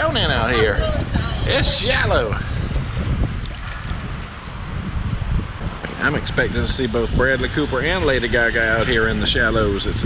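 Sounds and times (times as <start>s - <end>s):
shallow seawater washing: 0.0s - 9.8s
wind buffeting microphone: 0.0s - 10.0s.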